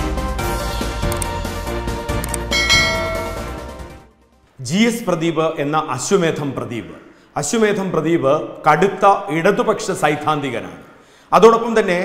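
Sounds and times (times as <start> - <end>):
intro music: 2.4 - 4.0
bell chime: 2.5 - 3.9.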